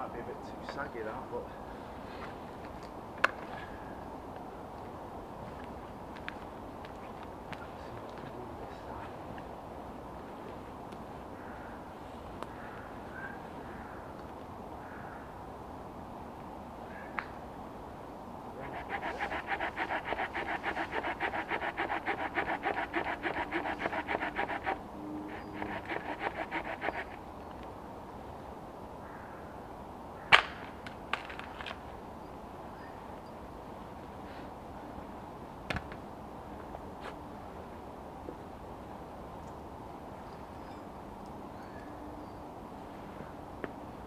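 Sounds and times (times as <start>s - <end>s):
hand saw cutting wood: 18.6s - 27.2s.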